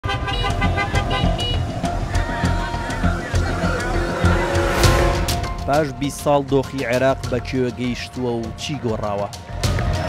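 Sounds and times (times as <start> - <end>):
car horns tooting: 0.0 - 5.5
street traffic: 0.0 - 10.0
low pulsing beat: 0.2 - 8.6.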